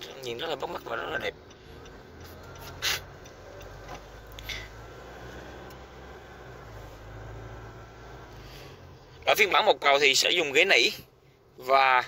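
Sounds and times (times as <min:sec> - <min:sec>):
engine and road noise in cabin: 0:00.0 - 0:12.0
faint clicks: 0:01.4 - 0:04.6.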